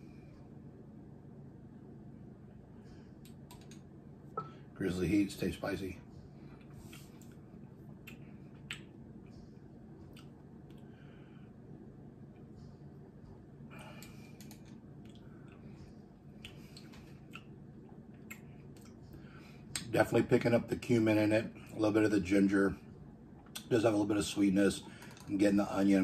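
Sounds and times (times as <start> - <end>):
low steady hum: 0.0 - 26.0
lip smacks and mouth clicks: 6.6 - 9.0, 10.0 - 10.9, 14.0 - 15.6, 16.3 - 19.0, 19.7 - 19.9, 23.4 - 23.7.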